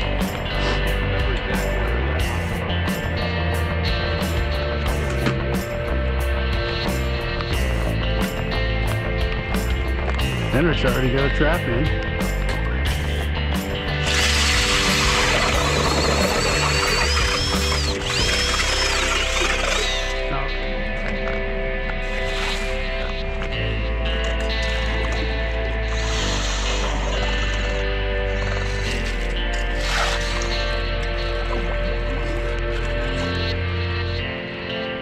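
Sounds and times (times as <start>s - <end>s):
background music: 0.0s - 35.0s
power drill whining: 14.0s - 20.3s, 22.0s - 23.2s, 24.3s - 33.5s.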